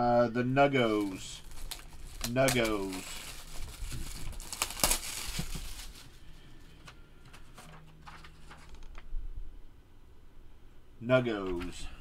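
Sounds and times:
cellophane wrap crinkling: 0.8 - 9.1.

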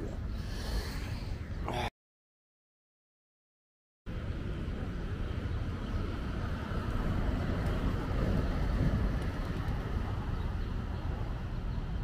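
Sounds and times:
wind buffeting microphone: 4.2 - 12.0.

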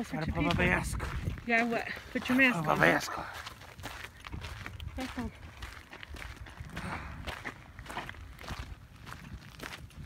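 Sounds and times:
footsteps on gravel trail: 0.0 - 10.0.

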